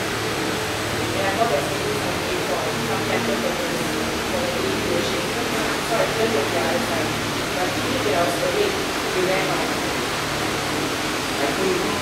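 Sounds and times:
low steady hum: 0:00.0 - 0:12.0
room tone hiss: 0:00.0 - 0:12.0.

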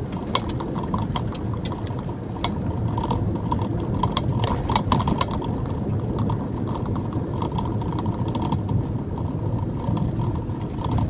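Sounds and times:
engine and road rumble: 0:00.0 - 0:11.0
sharp clicks and rattles: 0:00.0 - 0:11.0.

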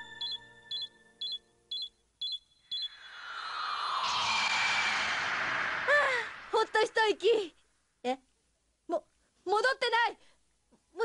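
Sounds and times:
rush of noise: 0:02.9 - 0:07.5.

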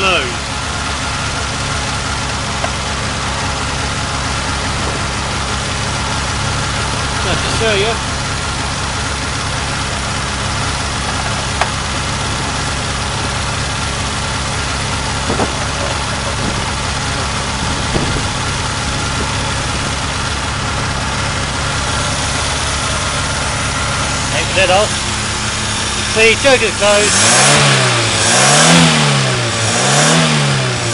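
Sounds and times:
petrol engine idling: 0:00.0 - 0:28.2.

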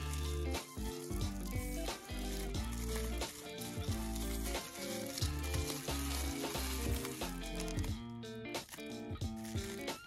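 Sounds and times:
background music with bass: 0:00.0 - 0:10.0
bubble wrap crackling: 0:00.0 - 0:10.0.

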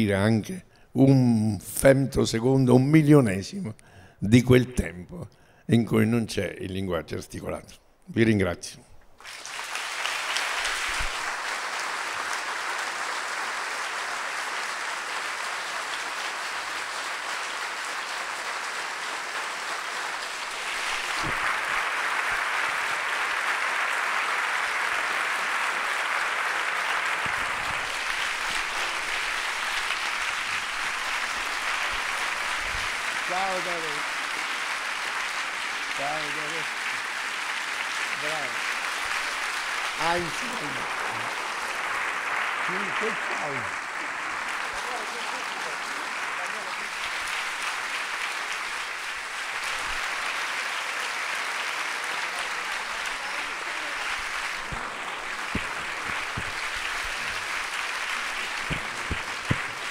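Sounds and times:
audience applauding: 0:09.2 - 0:59.9.

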